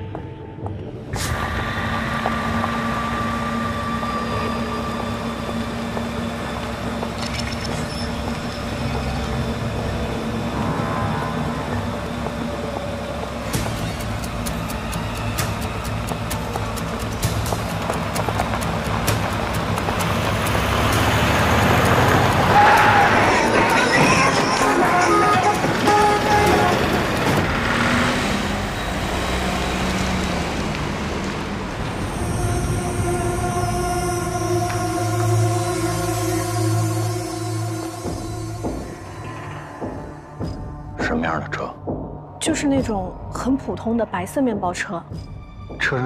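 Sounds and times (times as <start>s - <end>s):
music: 0.0s - 27.9s, 31.7s - 46.0s
van engine running: 1.2s - 39.0s.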